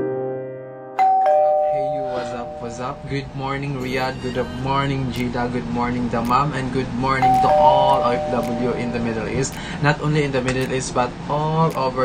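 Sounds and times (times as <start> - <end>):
two-note doorbell chime: 1.0 - 3.5, 7.2 - 9.4
man's voice: 1.7 - 12.0.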